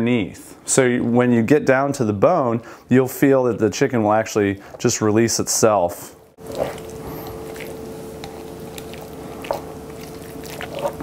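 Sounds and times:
steady hum: 0:06.1 - 0:11.0
knife slicing wet meat: 0:06.4 - 0:11.0.

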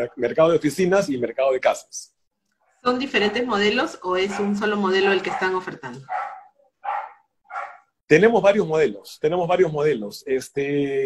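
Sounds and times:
dog barking: 0:04.2 - 0:08.0.

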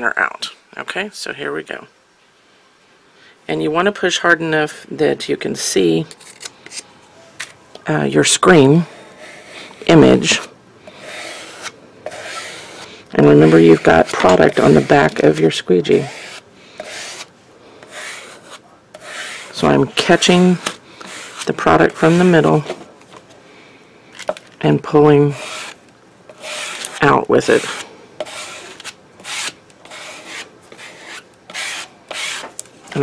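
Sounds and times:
squeegee rasping across screen mesh: 0:09.2 - 0:22.6, 0:25.3 - 0:32.6
squeegee scraping across mesh: 0:16.0 - 0:22.6.

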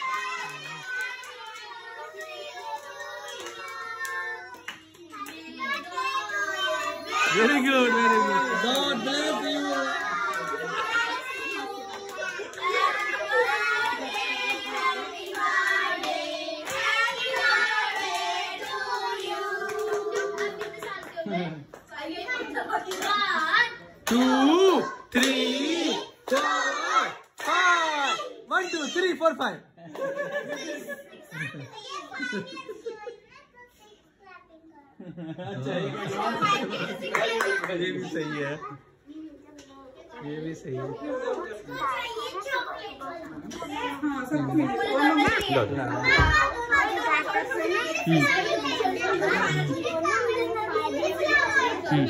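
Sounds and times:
children and women chattering: 0:00.0 - 0:27.2, 0:30.3 - 0:52.0
children singing in unison: 0:08.0 - 0:20.7
hand clapping: 0:19.7 - 0:21.9.

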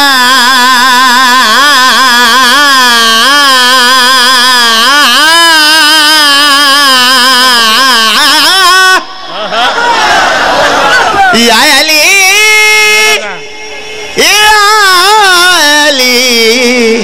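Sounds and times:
man singing through microphone: 0:00.0 - 0:09.1, 0:11.3 - 0:13.2, 0:14.1 - 0:17.0.

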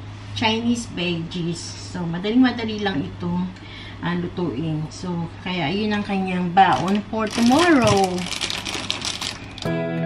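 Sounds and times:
oil crackling in a frying pan: 0:06.8 - 0:09.7
gentle guitar music: 0:09.7 - 0:10.0.

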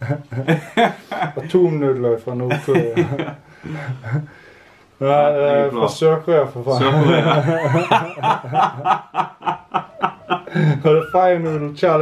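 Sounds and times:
man laughing: 0:00.0 - 0:01.5, 0:02.5 - 0:04.3, 0:06.8 - 0:11.7.

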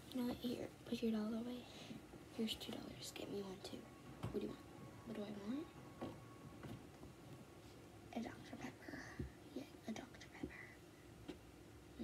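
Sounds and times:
girl whispering: 0:08.1 - 0:10.8.

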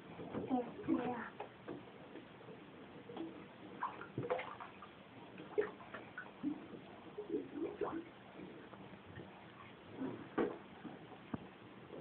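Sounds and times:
water splashing in bath: 0:03.2 - 0:08.6.

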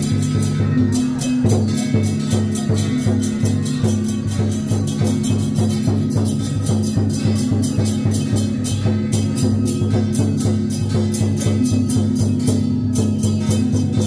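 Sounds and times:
cymbal-like strokes: 0:00.0 - 0:14.0
procession music with drums: 0:00.0 - 0:14.0.

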